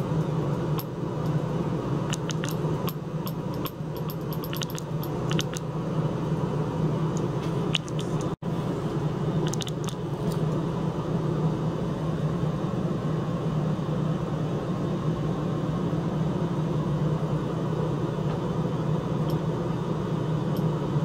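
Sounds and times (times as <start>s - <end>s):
low mechanical hum: 0.0s - 21.0s.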